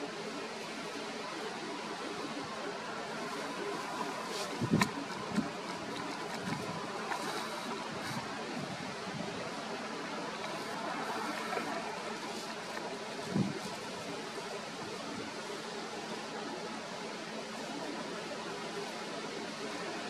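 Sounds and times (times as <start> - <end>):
steady background hiss: 0.0 - 20.0.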